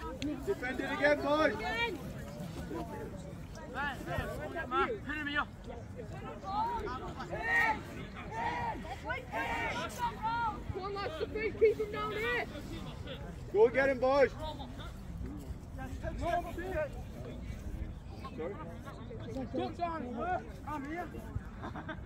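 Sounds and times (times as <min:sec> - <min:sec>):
players and spectators shouting: 0:06.1 - 0:12.6.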